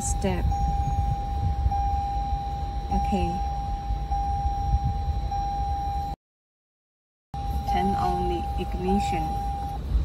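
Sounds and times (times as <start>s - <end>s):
low rumble: 0.0s - 6.2s.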